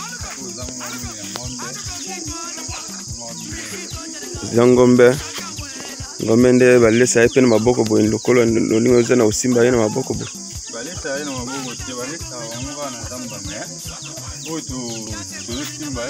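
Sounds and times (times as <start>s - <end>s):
background music with steady beat: 0.0s - 16.0s
insect chirring: 0.0s - 16.0s.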